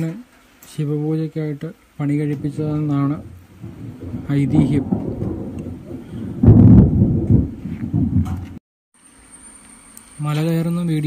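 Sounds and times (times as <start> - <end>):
wind on microphone rumble: 2.1 - 8.6.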